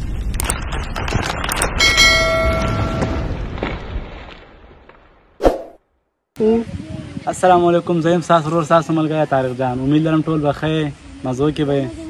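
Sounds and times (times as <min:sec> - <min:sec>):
bell-like notification chime: 0:01.8 - 0:03.3.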